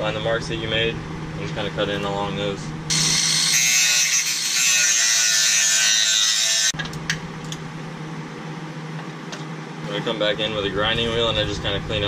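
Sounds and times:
cutoff wheel grinding metal: 2.9s - 6.8s.

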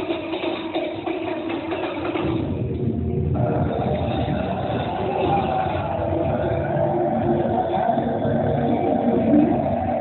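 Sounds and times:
steady music tones: 0.0s - 10.0s.

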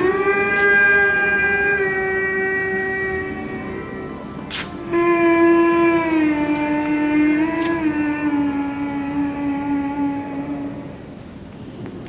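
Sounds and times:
long droning note: 0.0s - 11.8s.

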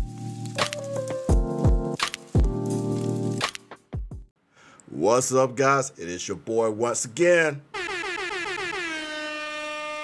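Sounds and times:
air horn blasts: 7.8s - 10.0s.

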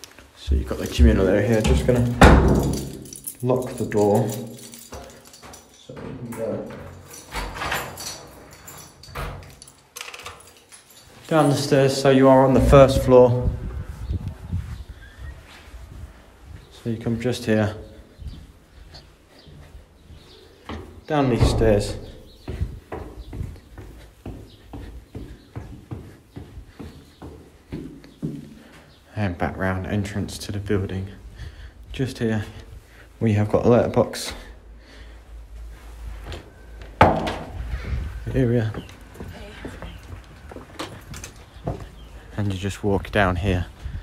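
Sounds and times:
footsteps going down stairs: 0.0s - 44.0s
door being locked with key: 1.5s - 11.2s.

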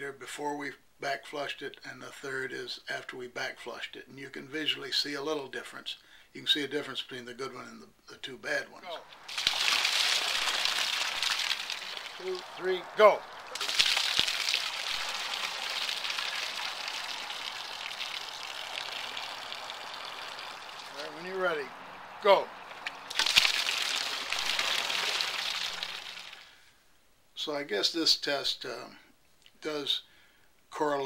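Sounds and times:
water splashing onto grass: 8.9s - 26.6s.

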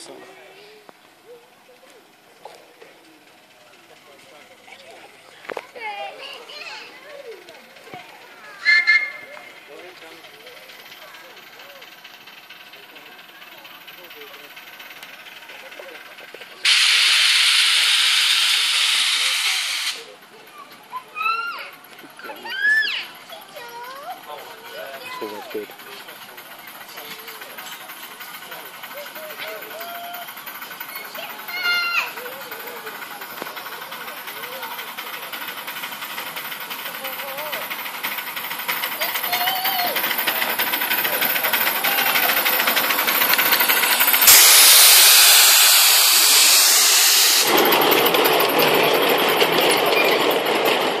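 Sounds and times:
steam train running: 0.0s - 51.0s
loud hiss of steam: 16.6s - 20.1s, 41.9s - 48.1s.

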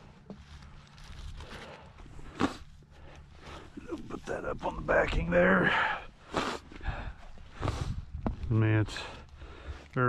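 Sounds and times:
rustling on grass: 0.0s - 9.8s.

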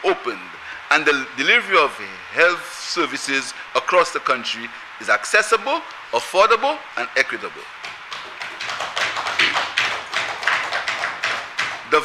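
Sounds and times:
applause: 8.1s - 11.9s.

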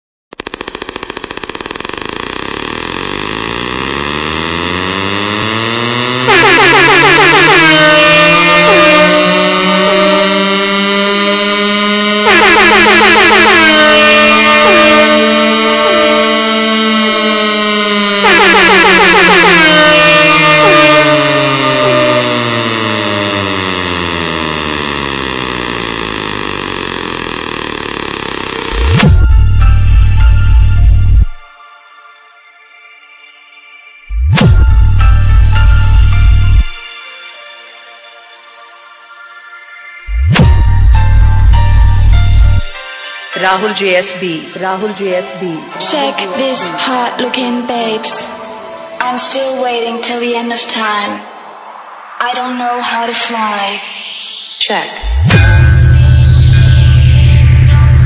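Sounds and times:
fast electronic pulses into buzz: 0.3s - 31.4s, 53.8s - 58.0s
air horn-like falling notes: 2.2s - 31.4s, 53.8s - 58.0s.

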